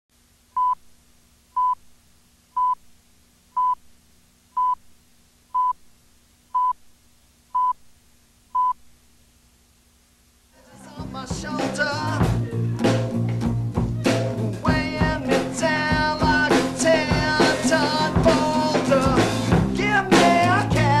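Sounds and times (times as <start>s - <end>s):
faint steady hum: 0.1s - 21.0s
short high beeps: 2.6s - 2.8s, 3.6s - 3.8s, 4.6s - 4.8s.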